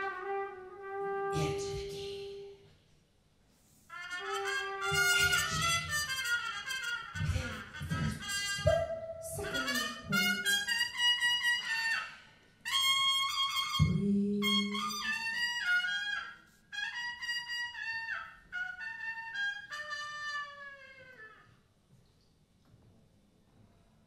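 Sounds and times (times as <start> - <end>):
brass section improvising: 0.0 - 2.3, 3.9 - 21.6.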